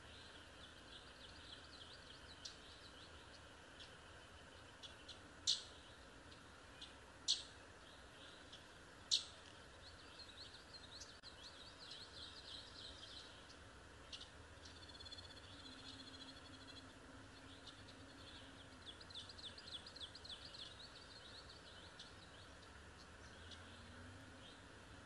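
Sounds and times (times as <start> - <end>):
faint birdsong chirps: 0.0 - 25.0
steady background hiss: 0.0 - 25.0.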